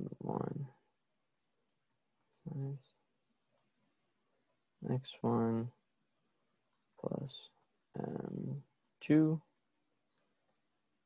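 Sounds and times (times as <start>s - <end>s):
person speaking: 0.0s - 0.8s, 2.4s - 2.9s, 4.8s - 5.8s, 6.9s - 9.6s
faint clicks from writing: 1.2s - 4.8s, 6.4s - 7.9s, 8.6s - 10.8s.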